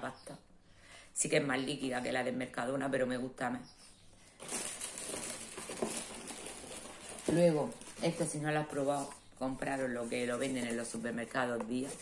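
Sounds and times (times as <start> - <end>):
rustling of groceries: 4.3 - 12.0.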